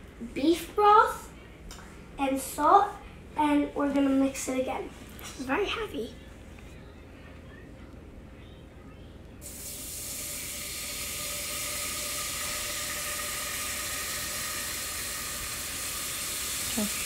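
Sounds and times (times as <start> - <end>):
broth sizzling in a hot pan: 9.4 - 17.0.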